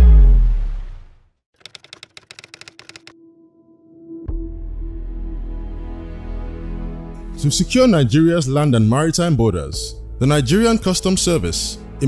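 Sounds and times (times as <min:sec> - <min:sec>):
rapid key-typing clicks: 0:01.6 - 0:03.2
music: 0:03.1 - 0:12.0.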